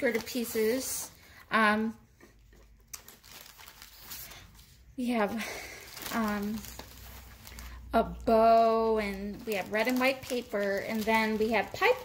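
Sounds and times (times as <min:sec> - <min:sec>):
paper rustling: 0:00.0 - 0:01.1, 0:02.6 - 0:04.8, 0:05.6 - 0:07.8, 0:08.5 - 0:12.0.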